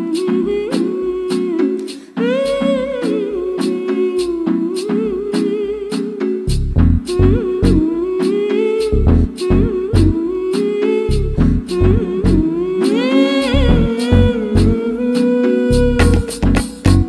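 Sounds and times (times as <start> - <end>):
person humming a melody: 0.0 - 17.0
steady drum beat: 15.7 - 17.0.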